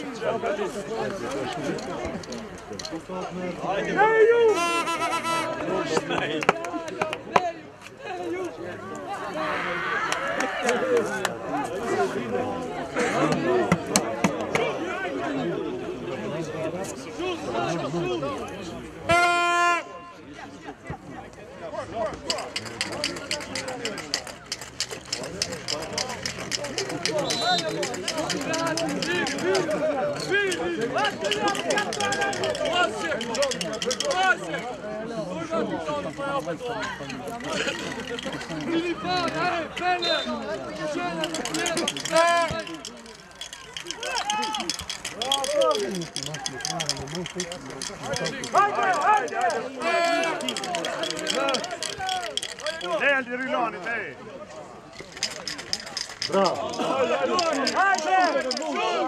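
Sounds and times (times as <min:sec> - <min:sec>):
rapid even clicking: 0:22.2 - 0:34.4, 0:40.7 - 0:53.0, 0:55.0 - 0:58.9.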